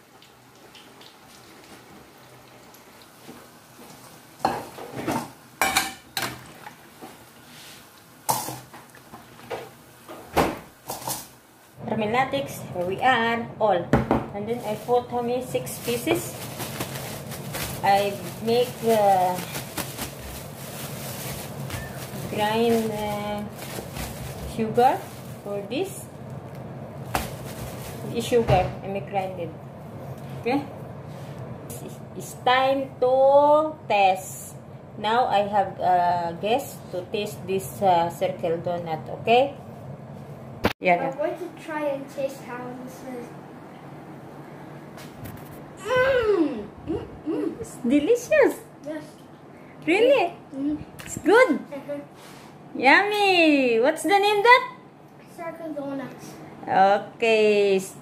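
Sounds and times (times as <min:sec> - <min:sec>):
dough sizzling in hot oil: 0:00.0 - 0:10.0
bag set down on stone countertop: 0:27.1 - 0:27.9.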